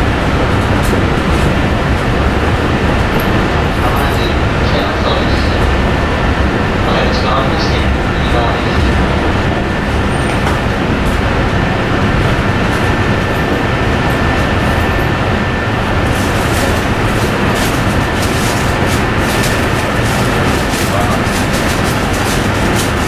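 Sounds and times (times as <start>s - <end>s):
train running noise: 0.0s - 23.0s.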